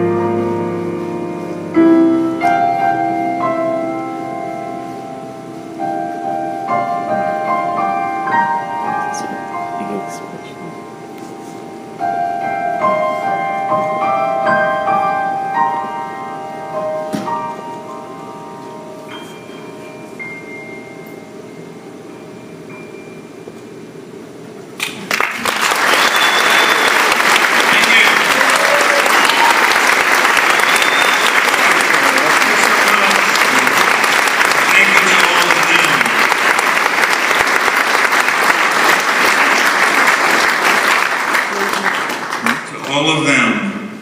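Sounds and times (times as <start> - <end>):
sustained notes of a song: 0.0 - 23.7
audience applause: 24.8 - 43.3.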